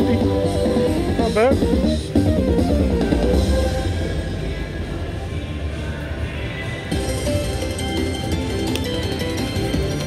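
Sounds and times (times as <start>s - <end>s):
slot machine win music: 0.0s - 3.9s.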